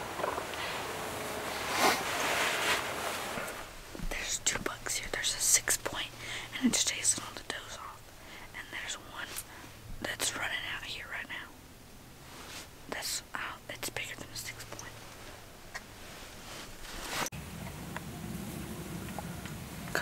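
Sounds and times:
people whispering: 12.9s - 15.0s.

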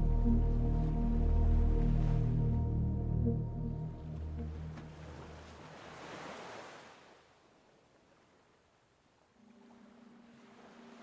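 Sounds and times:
ambient music: 0.0s - 5.5s
ocean wave washing in: 4.9s - 7.1s.

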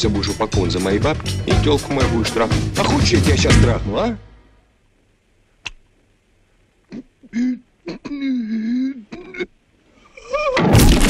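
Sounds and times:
soft clicks: 5.6s - 6.1s
person's wordless vocal sounds: 6.9s - 9.5s.

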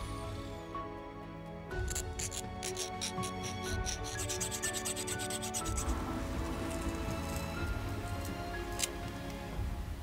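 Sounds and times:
background music: 0.0s - 10.0s
hand file rasping on metal: 1.9s - 6.0s.

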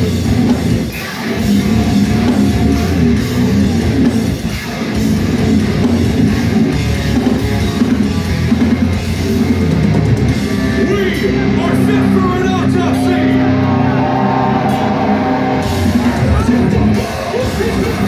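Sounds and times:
drum kit: 0.0s - 13.0s, 14.1s - 18.0s
heavy distorted guitars: 0.0s - 18.0s.

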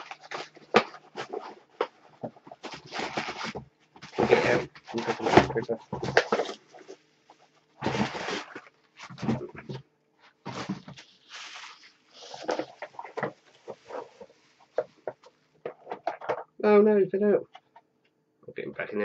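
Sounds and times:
newspaper rustling and crinkling: 0.0s - 9.8s, 10.4s - 16.4s.

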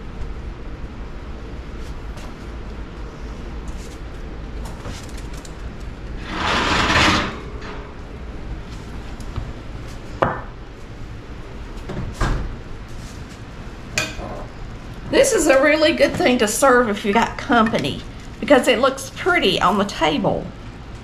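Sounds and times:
steady low hum: 0.0s - 21.0s
oven rack scraping metal on metal: 6.2s - 8.0s.

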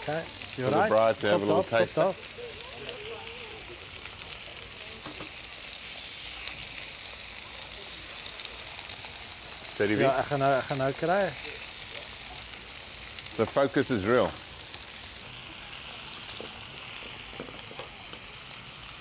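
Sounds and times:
meat sizzling on a griddle: 0.0s - 19.0s.

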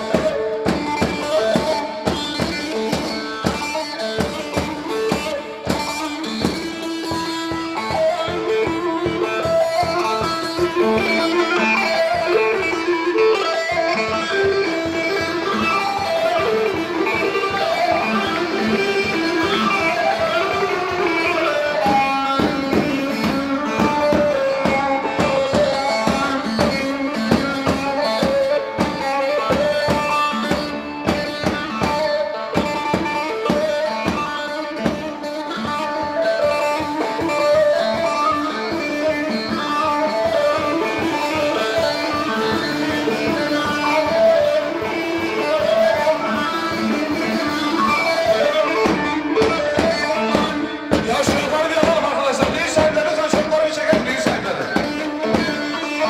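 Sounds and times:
drum beat: 0.0s - 56.0s
plucked string melody: 0.0s - 56.0s.

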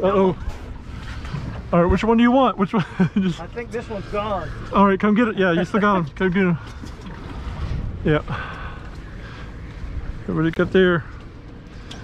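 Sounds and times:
wind rumbling on microphone: 6.9s - 10.8s.

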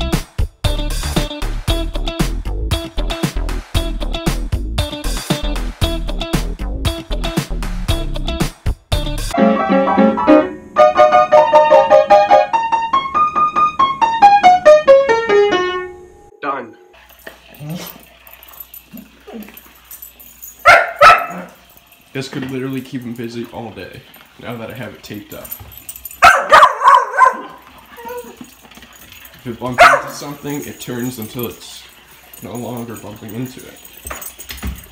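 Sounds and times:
upright piano notes and chords: 9.3s - 16.3s
dog barking and yipping: 17.4s - 22.0s, 25.7s - 30.7s.

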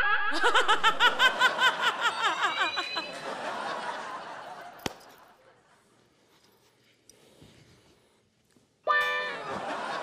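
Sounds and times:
person laughing loudly: 0.0s - 3.2s.

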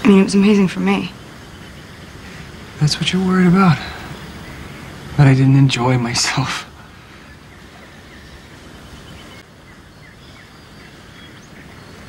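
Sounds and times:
faint bird chirps: 0.0s - 12.0s
outdoor background ambience: 0.0s - 12.0s.

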